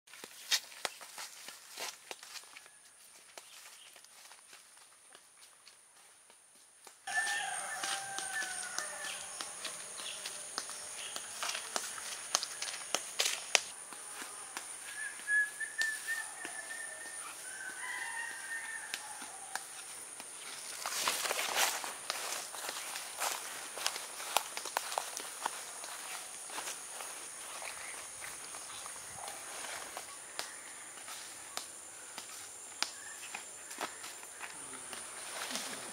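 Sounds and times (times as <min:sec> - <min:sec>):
footsteps through leaf litter: 0:00.1 - 0:05.5, 0:07.1 - 0:15.0, 0:16.4 - 0:35.9
high insect drone: 0:07.1 - 0:18.9
bird calls: 0:14.8 - 0:19.7, 0:27.4 - 0:35.9.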